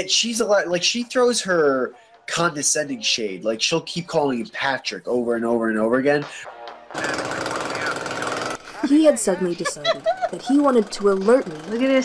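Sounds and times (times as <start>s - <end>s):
chainsaw engine rattling: 7.0s - 12.0s.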